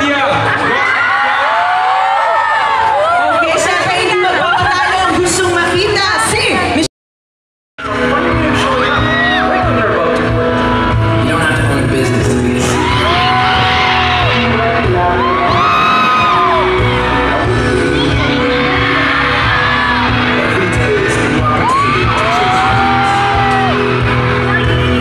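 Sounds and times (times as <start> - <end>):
loud live music: 7.8 - 25.0
steady bass notes: 7.8 - 25.0.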